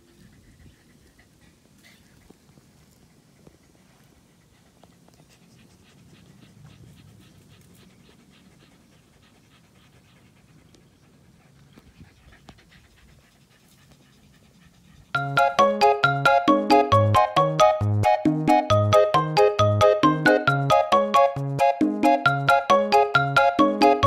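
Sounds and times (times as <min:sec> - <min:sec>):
dog panting: 0:00.0 - 0:16.8
bright music jingle: 0:15.2 - 0:24.0.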